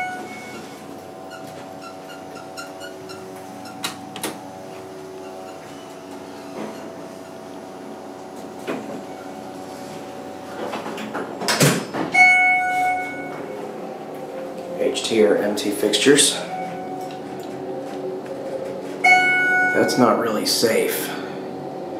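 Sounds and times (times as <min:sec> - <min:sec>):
electronic beep: 0:00.0 - 0:00.7, 0:19.1 - 0:19.9
sliding doors closing with clatter: 0:00.0 - 0:15.3, 0:16.1 - 0:20.0
elevator hum: 0:00.0 - 0:21.9.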